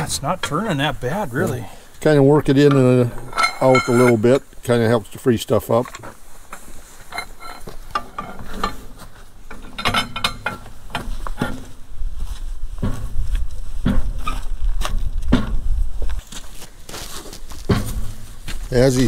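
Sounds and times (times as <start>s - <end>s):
wrench clinking and knocking: 2.6s - 4.2s, 9.5s - 11.6s.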